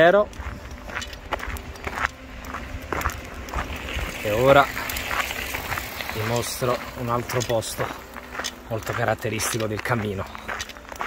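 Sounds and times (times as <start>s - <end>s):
footsteps: 0.0s - 11.0s.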